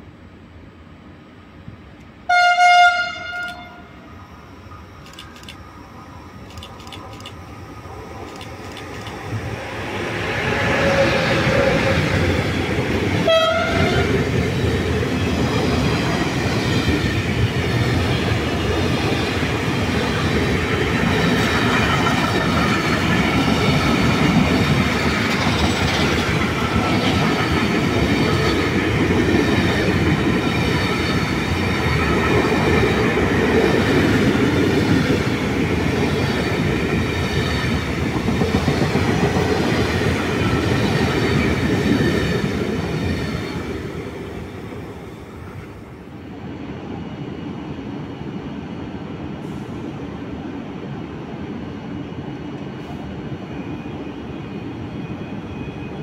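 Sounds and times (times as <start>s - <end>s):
train wheels rumbling on rails: 4.7s - 56.0s.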